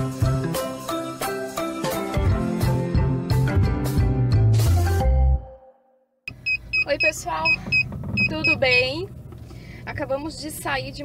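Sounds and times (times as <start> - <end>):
intro music: 0.0 - 5.7
car interior hum: 6.3 - 11.0.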